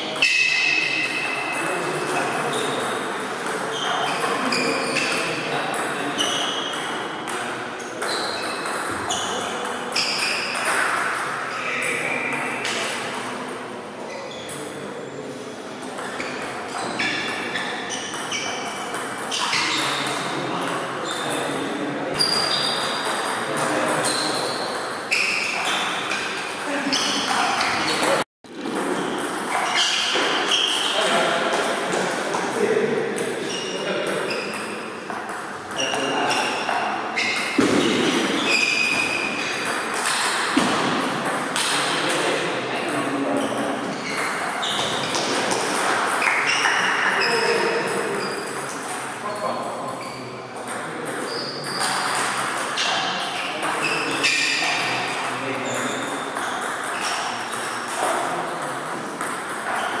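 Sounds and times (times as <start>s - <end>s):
voices in background: 0.0s - 28.2s, 29.2s - 60.0s.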